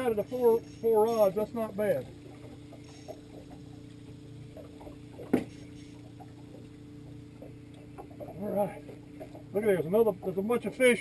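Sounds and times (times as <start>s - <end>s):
boat motor humming: 0.0s - 11.0s
faint ticks: 2.3s - 9.5s.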